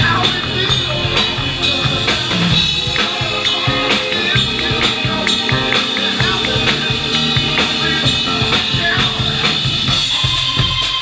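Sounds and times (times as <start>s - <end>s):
drum kit steady beat: 0.0s - 11.0s
organ playing: 0.0s - 11.0s.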